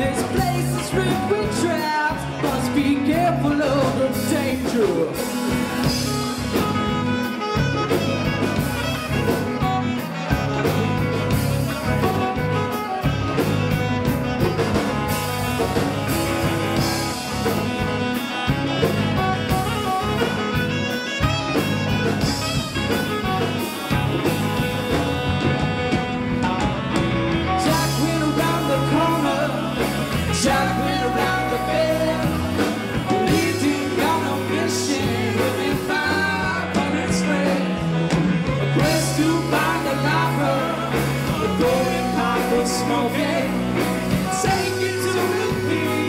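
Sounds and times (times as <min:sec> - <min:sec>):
bass: 0:00.0 - 0:46.0
drums: 0:00.0 - 0:46.0
electric guitar lead: 0:00.0 - 0:46.0
saxophone: 0:00.0 - 0:46.0.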